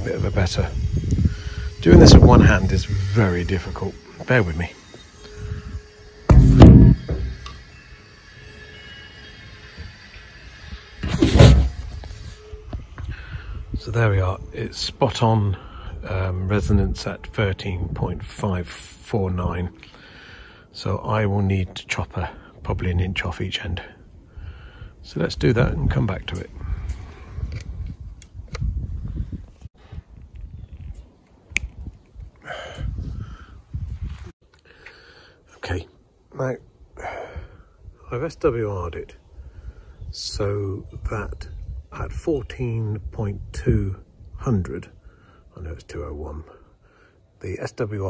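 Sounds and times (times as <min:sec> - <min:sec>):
wind rumbling on microphone: 0:00.0 - 0:03.6, 0:24.1 - 0:34.4.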